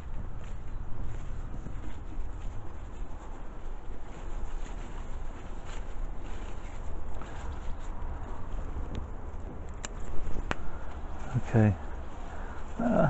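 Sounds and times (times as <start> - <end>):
leaves rustling: 0.0 - 13.0
wind buffeting microphone: 0.0 - 13.0.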